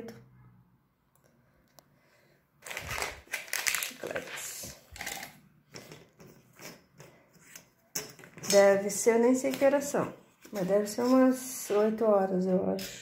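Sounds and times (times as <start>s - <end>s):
paper and cardboard rustling: 2.6s - 4.8s.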